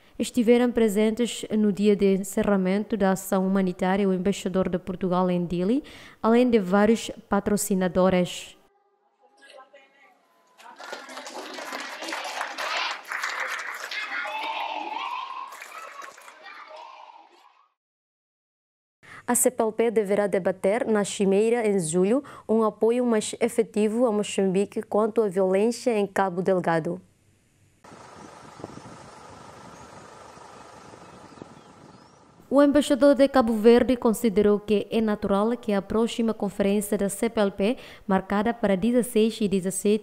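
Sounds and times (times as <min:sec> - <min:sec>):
children clapping: 0:10.5 - 0:17.4
children calling out together: 0:13.7 - 0:17.6.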